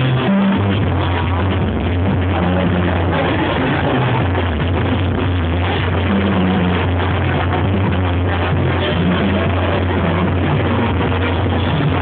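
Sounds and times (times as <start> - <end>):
tuba bass line: 0.0 - 12.0
trumpets and horns: 5.6 - 12.0.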